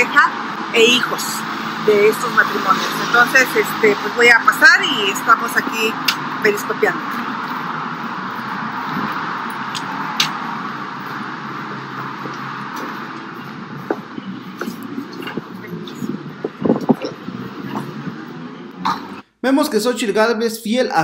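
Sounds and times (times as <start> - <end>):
street traffic hum: 0.0 - 19.3.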